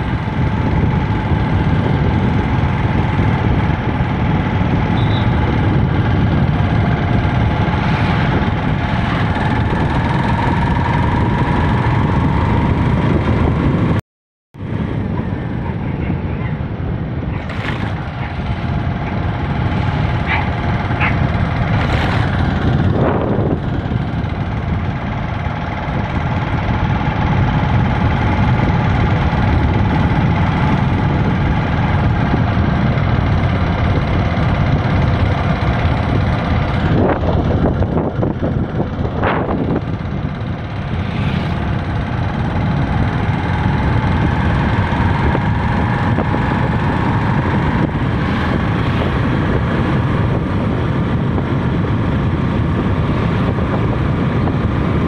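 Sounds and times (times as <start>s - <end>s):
vehicle engine and road noise: 0.0s - 14.0s, 14.6s - 55.0s
vehicles whooshing past: 5.0s - 13.8s, 36.9s - 54.8s.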